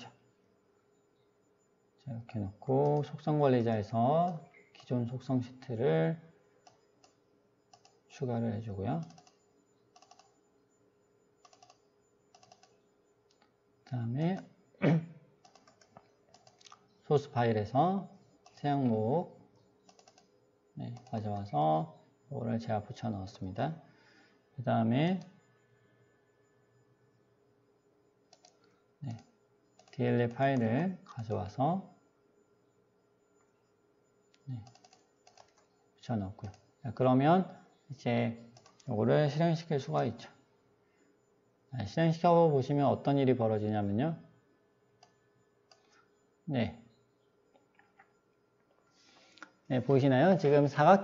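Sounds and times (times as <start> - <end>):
faint computer keys clicking: 2.6 - 5.2, 6.5 - 8.1, 8.9 - 14.7, 15.4 - 17.0, 18.0 - 21.6, 25.0 - 25.8, 28.2 - 31.3, 33.2 - 36.8, 37.6 - 38.9, 44.9 - 50.0
computer keyboard clicking: 6.6 - 8.1, 9.0 - 9.4, 10.0 - 10.4, 11.4 - 13.5, 15.4 - 16.8, 19.8 - 20.3, 20.9 - 21.5, 28.3 - 30.6, 34.3 - 35.7, 38.6 - 38.9.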